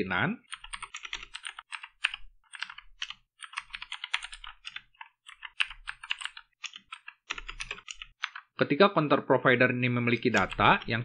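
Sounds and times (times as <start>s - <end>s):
computer keyboard typing: 0.5s - 8.6s, 10.1s - 11.0s.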